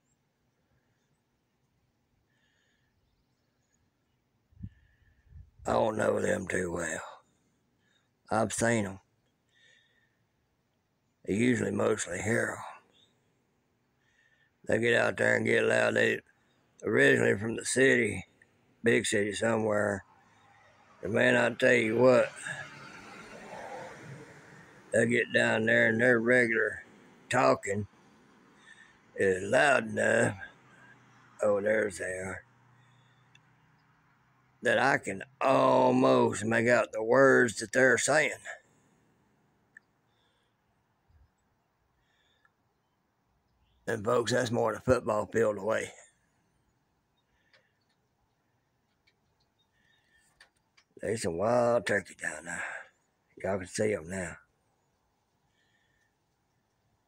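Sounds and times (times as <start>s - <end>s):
outdoor background noise: 0.0s - 57.0s
man's voice: 5.7s - 7.2s, 8.3s - 9.0s, 11.3s - 12.8s, 14.7s - 16.2s, 16.8s - 18.2s, 18.9s - 20.0s, 21.0s - 22.6s, 24.9s - 27.9s, 29.2s - 30.5s, 31.4s - 32.4s, 34.6s - 38.5s, 43.9s - 46.0s, 51.0s - 52.8s, 53.4s - 54.4s
faint ticks: 32.9s - 33.9s, 47.2s - 48.1s, 48.8s - 51.0s.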